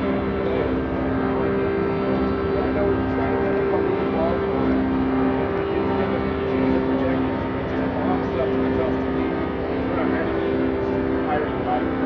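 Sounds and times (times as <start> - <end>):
indistinct chatter of voices: 0.0 - 12.0
low street hum: 0.0 - 12.0.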